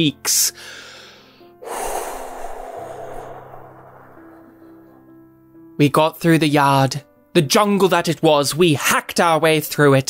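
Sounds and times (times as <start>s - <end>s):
soft background music: 0.0s - 10.0s
loud breathy rush of noise: 0.7s - 5.7s.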